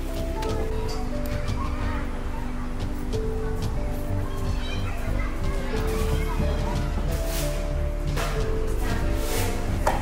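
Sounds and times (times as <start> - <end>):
background music with sustained notes: 0.0 - 10.0.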